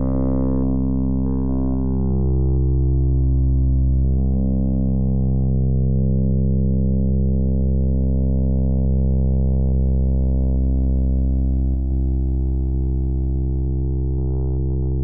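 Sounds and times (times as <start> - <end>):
low buzzy electronic drone: 0.0 - 15.0.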